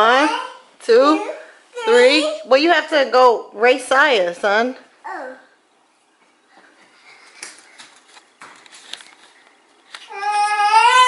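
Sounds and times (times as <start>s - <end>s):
children's footsteps on tile floor: 6.2s - 11.0s.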